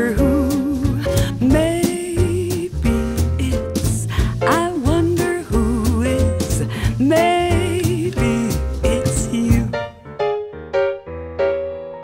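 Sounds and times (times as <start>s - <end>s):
bass and drums: 0.0s - 9.9s.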